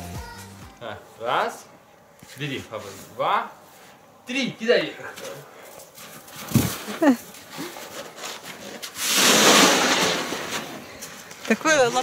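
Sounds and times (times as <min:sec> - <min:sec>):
snow shovels scraping snow: 0:06.0 - 0:12.0.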